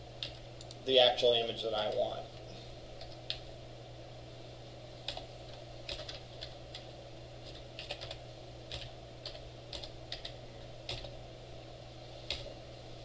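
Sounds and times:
steady low hum: 0:00.0 - 0:13.0
typing on keyboard: 0:05.9 - 0:06.8, 0:07.4 - 0:11.1, 0:12.3 - 0:12.5.

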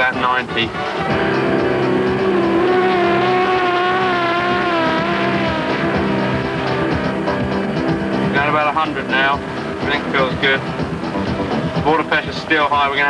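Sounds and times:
boat engines droning at high speed: 0:00.0 - 0:13.0.

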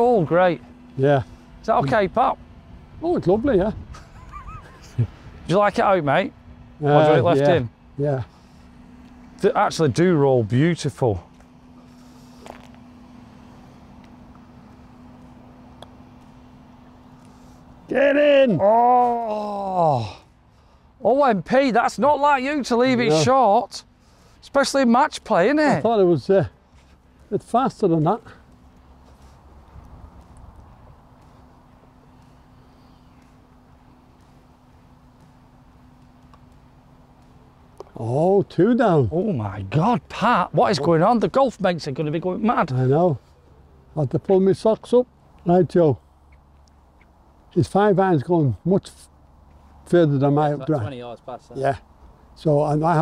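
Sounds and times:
steady low hum: 0:00.0 - 0:53.0
putter striking golf ball: 0:15.7 - 0:16.4.

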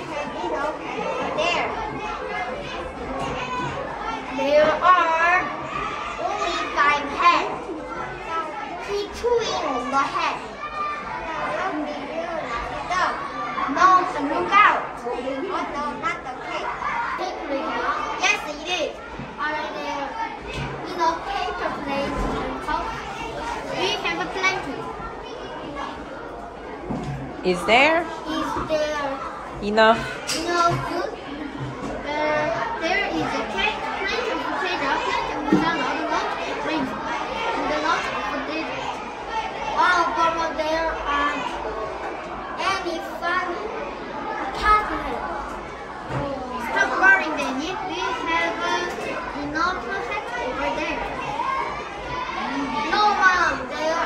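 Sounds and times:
children chattering: 0:00.0 - 0:54.0.

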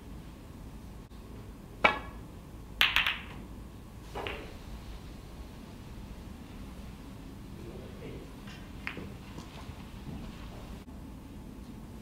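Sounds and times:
cue striking ball: 0:01.8 - 0:02.2, 0:02.8 - 0:03.4, 0:04.1 - 0:04.6, 0:08.4 - 0:09.2
snooker balls knocking together: 0:02.8 - 0:03.4, 0:04.1 - 0:04.6, 0:08.4 - 0:09.6.

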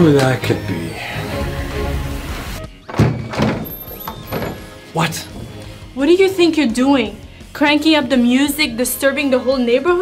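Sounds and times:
music playing: 0:00.0 - 0:10.0
loud thunks at a door: 0:02.9 - 0:04.7.

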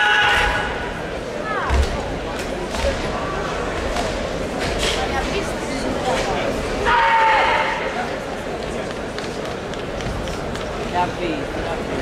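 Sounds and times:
crowd murmur in a hall: 0:00.0 - 0:12.0.

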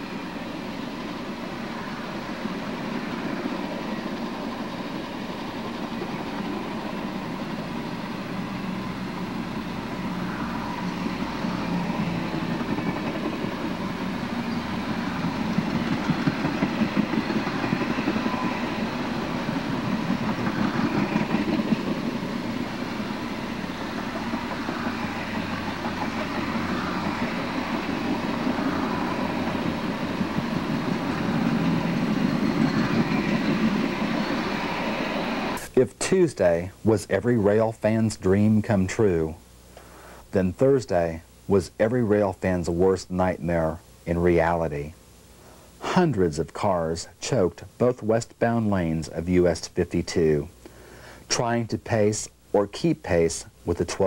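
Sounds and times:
train wheels rumbling on rails: 0:00.0 - 0:35.8.

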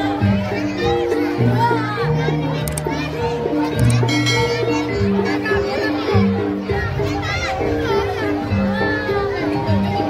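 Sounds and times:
children's voices: 0:00.0 - 0:10.0
crowd chatter: 0:00.0 - 0:10.0
gamelan music: 0:00.0 - 0:10.0.

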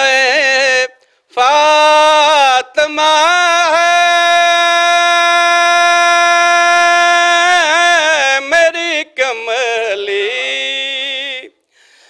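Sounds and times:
man chanting devotional verse: 0:00.0 - 0:11.6.

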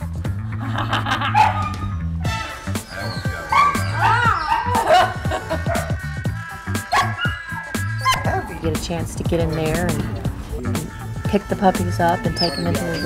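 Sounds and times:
background music: 0:00.0 - 0:13.0
woman laughing: 0:00.6 - 0:01.6, 0:04.6 - 0:06.9
puppies barking: 0:00.9 - 0:08.7, 0:12.2 - 0:13.0.

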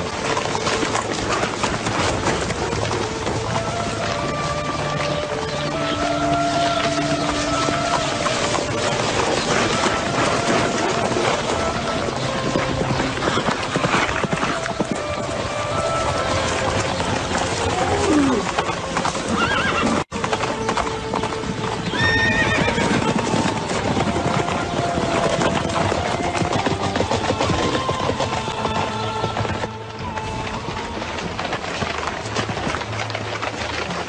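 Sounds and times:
film score music: 0:00.0 - 0:34.0
horses whinnying: 0:00.0 - 0:34.0
horses' hooves pounding: 0:00.0 - 0:34.0.

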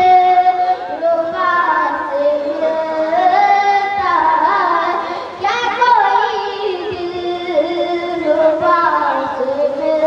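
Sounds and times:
boy singing into a microphone: 0:00.0 - 0:10.0.

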